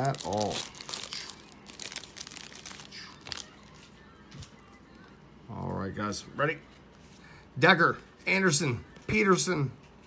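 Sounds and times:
plastic wrapper crinkling and tearing: 0:00.0 - 0:04.5.

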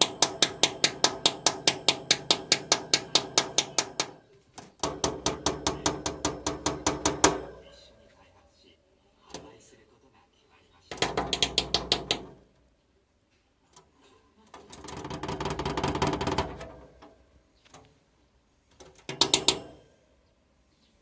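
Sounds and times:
bird feet tapping on plastic: 0:10.9 - 0:12.4, 0:18.7 - 0:19.8.

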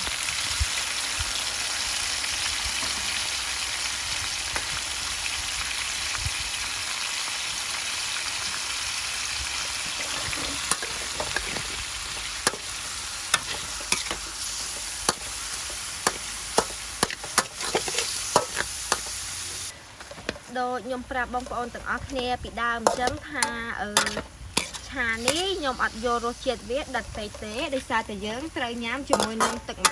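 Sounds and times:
beef sizzling in a wok: 0:00.0 - 0:29.9
metal spatula clinking on wok: 0:29.1 - 0:29.9.

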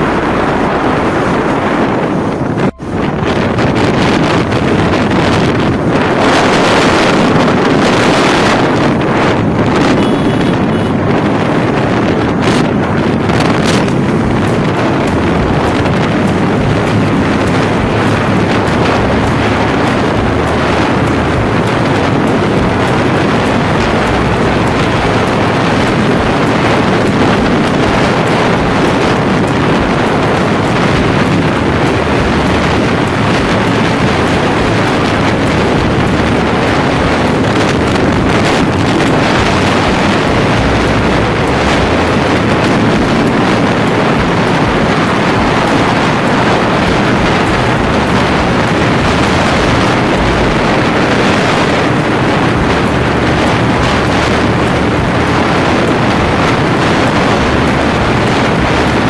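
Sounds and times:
motorcycle engine running: 0:00.0 - 0:59.0
wind rushing over microphone: 0:00.0 - 0:59.0.

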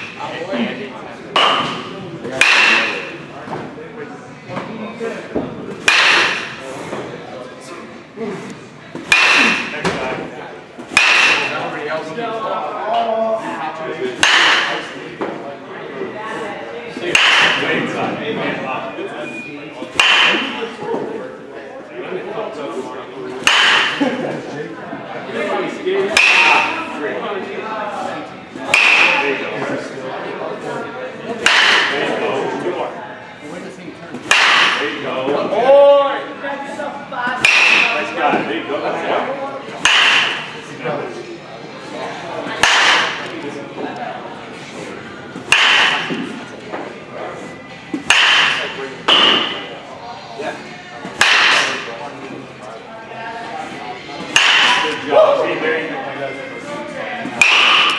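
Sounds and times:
baseball bat hitting ball: 0:01.4 - 0:03.2, 0:05.8 - 0:06.6, 0:09.0 - 0:10.1, 0:10.9 - 0:11.6, 0:14.2 - 0:14.9, 0:17.1 - 0:17.8, 0:20.0 - 0:20.6, 0:23.4 - 0:24.0, 0:26.1 - 0:26.8, 0:28.7 - 0:29.4, 0:31.4 - 0:32.1, 0:34.3 - 0:35.0, 0:37.4 - 0:38.2, 0:39.8 - 0:40.6, 0:42.6 - 0:43.3, 0:45.5 - 0:46.4, 0:48.0 - 0:49.7, 0:51.1 - 0:51.9, 0:54.3 - 0:55.0, 0:57.4 - 0:57.9.

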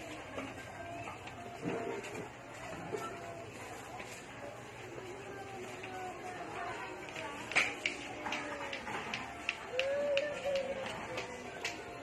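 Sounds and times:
market stall background noise: 0:00.0 - 0:12.0.

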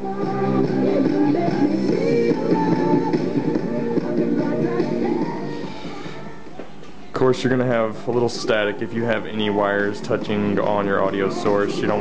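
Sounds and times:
song playing through speakers: 0:00.0 - 0:12.0.

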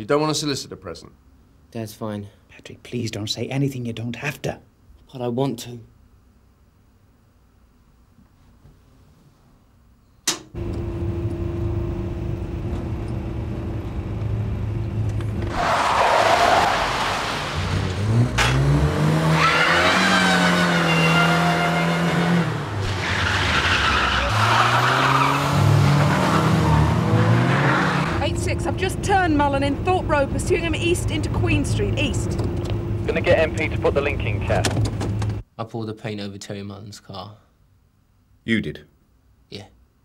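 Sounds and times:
sharp click: 0:10.2 - 0:10.5
car engine revving: 0:15.4 - 0:35.2
tyres squealing: 0:19.2 - 0:28.1.

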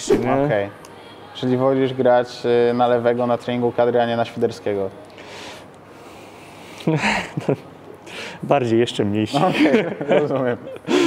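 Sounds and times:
man chuckling: 0:06.8 - 0:07.7, 0:09.4 - 0:11.0.

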